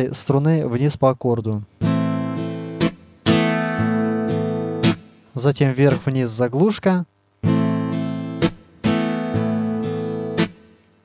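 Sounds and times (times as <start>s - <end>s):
acoustic guitar strumming: 1.8s - 6.2s, 7.4s - 11.0s
muted guitar stroke: 1.8s - 6.2s, 7.4s - 10.9s.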